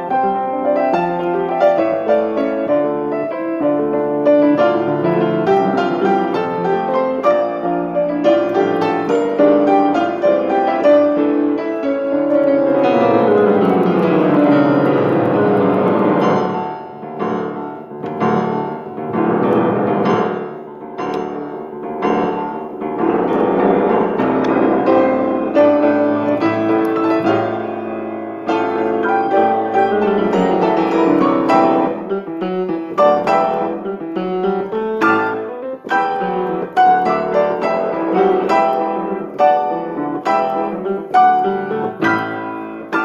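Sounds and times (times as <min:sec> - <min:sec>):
solo piano piece: 0:00.0 - 0:43.0.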